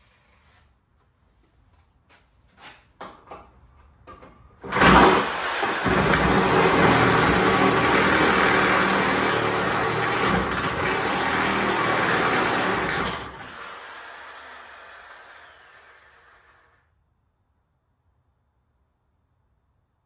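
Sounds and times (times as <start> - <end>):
electric motor running: 5.1 - 16.8.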